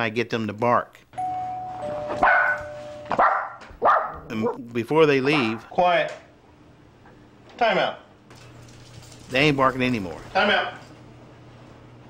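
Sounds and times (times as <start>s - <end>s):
two-tone doorbell chime: 1.2s - 3.2s
dogs barking: 2.2s - 5.8s.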